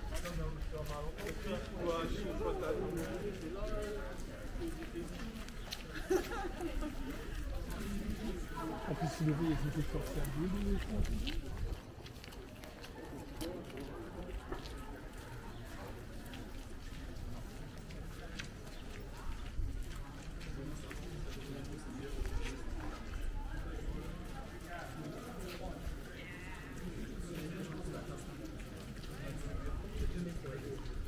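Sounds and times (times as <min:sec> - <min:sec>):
footsteps on stone pavement: 0:00.0 - 0:31.0
people talking in background: 0:00.0 - 0:31.0
man speaking: 0:09.0 - 0:11.2.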